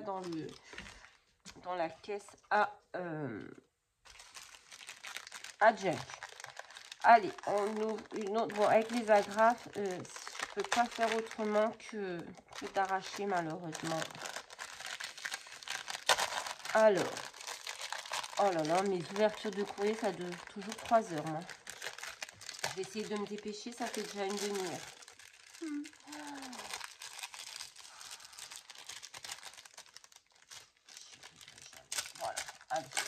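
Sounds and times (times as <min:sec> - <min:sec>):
cellophane packet crinkling: 0:00.0 - 0:01.7, 0:04.0 - 0:33.0.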